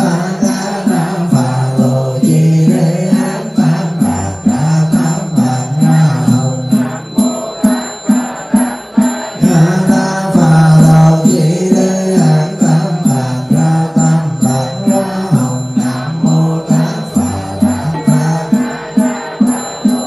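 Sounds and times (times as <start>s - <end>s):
monk chanting into microphone: 0.0s - 20.0s.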